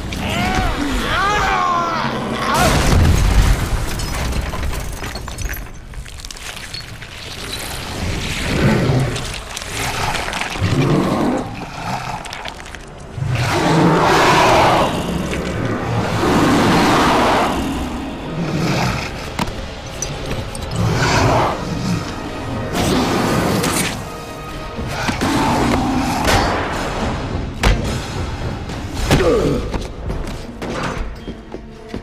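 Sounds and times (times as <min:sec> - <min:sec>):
film score: 0:00.0 - 0:32.0.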